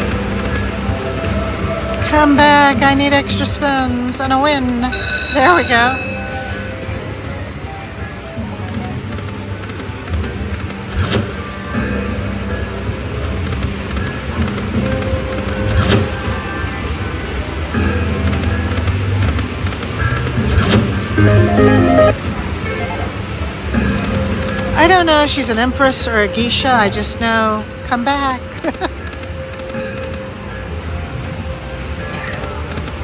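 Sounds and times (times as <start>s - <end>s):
slot machine music and jingles: 4.8s - 7.6s, 21.0s - 23.3s.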